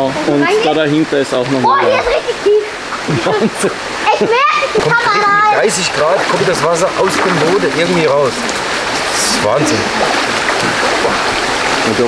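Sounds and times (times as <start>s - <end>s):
running water rushing: 0.0s - 12.0s.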